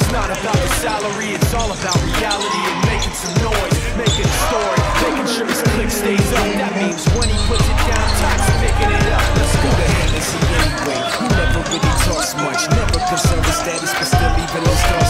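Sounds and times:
hip-hop beat with heavy bass: 0.0s - 15.0s.

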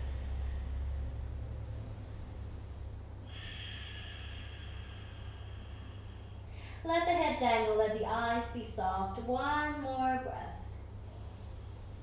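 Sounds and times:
woman breathing slowly: 0.0s - 7.5s, 10.6s - 12.0s
steady low hum: 0.0s - 12.0s.

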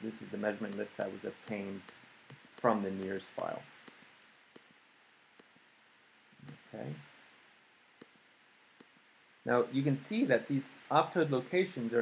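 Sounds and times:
computer mouse clicks: 0.7s - 4.8s, 6.4s - 6.6s.

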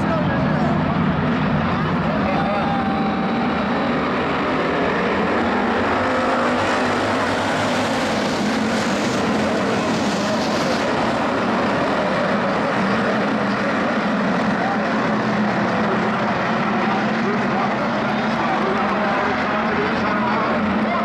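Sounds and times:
race car engines roaring: 0.0s - 21.0s
passing car engine: 0.7s - 21.0s.

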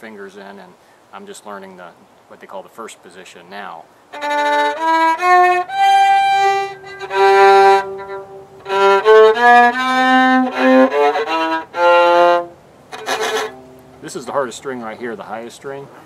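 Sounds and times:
viola playing slow single notes: 4.1s - 14.0s.

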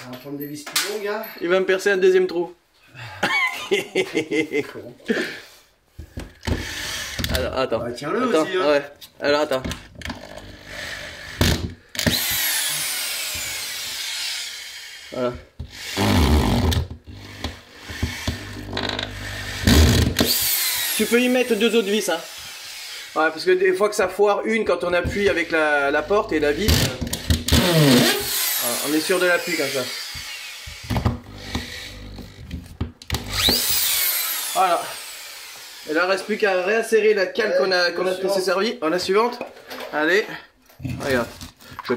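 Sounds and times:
drill clicks and knocks on wall: 6.0s - 7.4s, 16.4s - 21.0s, 26.6s - 28.5s, 30.0s - 34.0s
cordless drill driving a screw: 6.4s - 7.5s, 10.1s - 23.2s, 25.1s - 36.7s.

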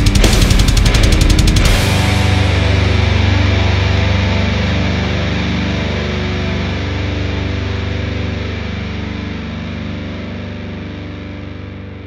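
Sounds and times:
distorted electric guitar drone: 0.0s - 12.0s.

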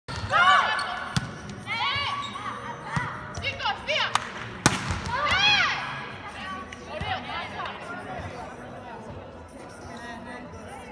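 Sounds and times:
volleyball being hit: 4.2s - 5.4s.

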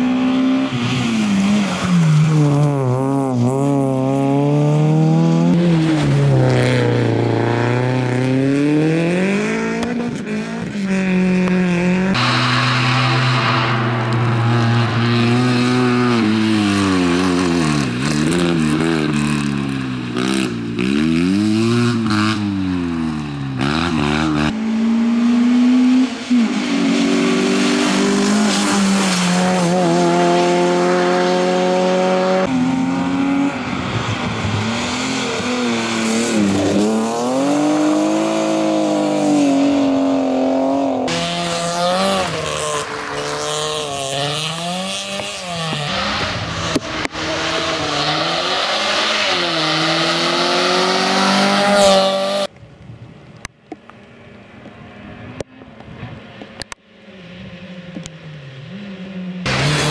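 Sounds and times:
rally car engines revving: 0.0s - 52.5s, 56.3s - 59.9s.

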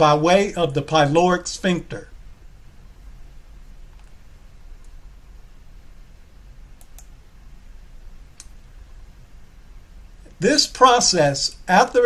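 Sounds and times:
low steady hum: 0.0s - 12.0s
computer mouse clicks: 3.9s - 4.2s, 6.8s - 7.2s, 8.3s - 8.6s.

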